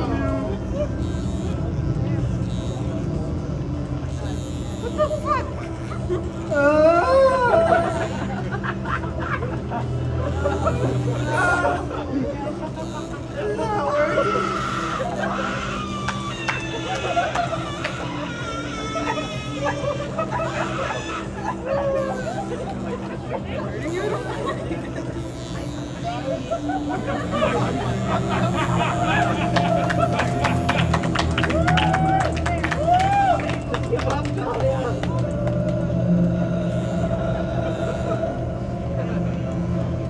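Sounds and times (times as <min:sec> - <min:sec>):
steady low drone: 0:00.0 - 0:40.0
electric hair clippers buzzing: 0:00.9 - 0:06.7, 0:12.7 - 0:13.4, 0:14.2 - 0:20.9, 0:23.7 - 0:31.5, 0:33.9 - 0:38.2.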